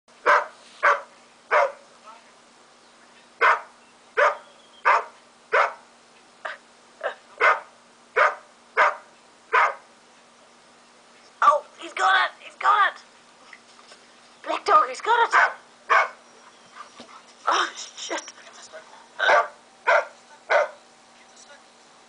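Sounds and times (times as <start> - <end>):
faint steady hum: 0.1 - 22.0
dog barking: 0.2 - 1.9, 3.4 - 5.8, 7.4 - 9.9, 15.3 - 16.2, 19.2 - 20.8.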